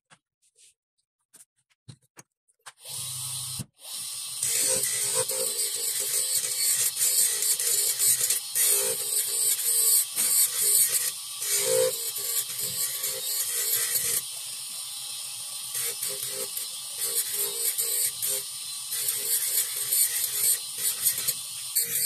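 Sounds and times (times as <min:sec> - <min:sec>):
dental drill grinding plastic: 0:02.7 - 0:22.0
motor running steadily: 0:02.9 - 0:22.0.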